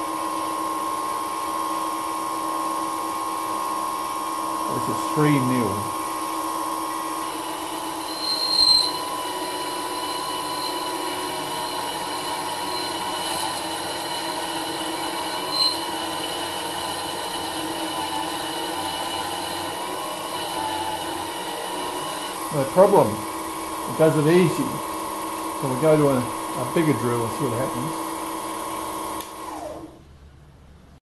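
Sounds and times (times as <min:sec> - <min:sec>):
drill motor whining: 0:00.0 - 0:30.0
short high squeals: 0:07.5 - 0:13.6, 0:15.1 - 0:16.2.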